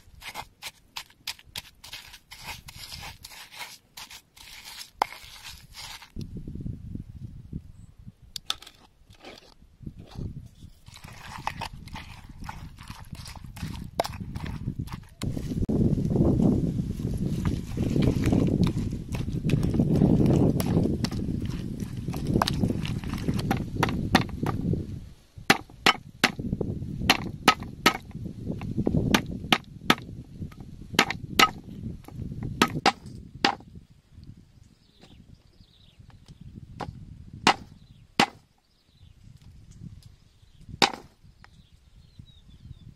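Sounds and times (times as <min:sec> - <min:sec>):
wooden pestle pounding in mortar: 0:11.0 - 0:15.2, 0:18.6 - 0:24.6, 0:25.5 - 0:26.4, 0:27.1 - 0:30.1, 0:31.0 - 0:31.6, 0:32.6 - 0:33.6, 0:37.5 - 0:38.4
knife chopping on wooden board: 0:37.5 - 0:38.4.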